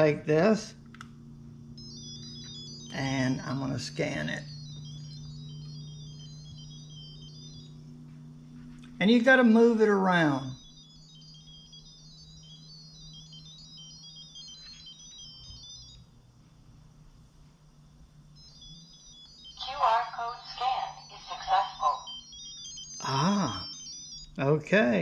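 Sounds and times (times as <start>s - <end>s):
high electronic beeps: 1.7s - 16.0s, 18.4s - 24.7s.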